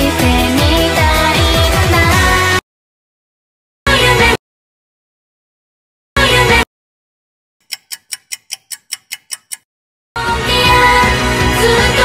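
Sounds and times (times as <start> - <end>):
quick high clock ticking: 7.6 - 9.7.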